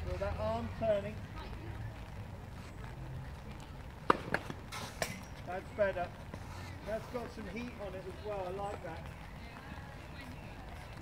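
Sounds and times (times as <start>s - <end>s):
tennis ball pops: 4.0s - 5.2s.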